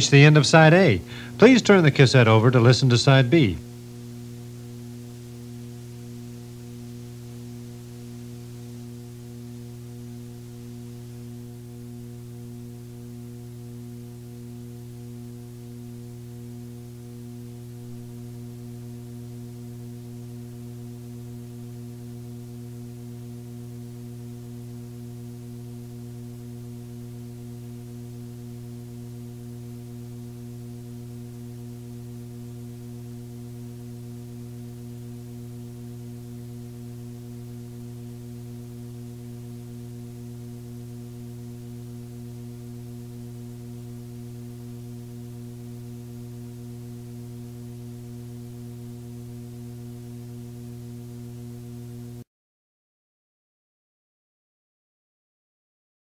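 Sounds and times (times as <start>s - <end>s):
low electrical mains hum: 0.0s - 52.3s.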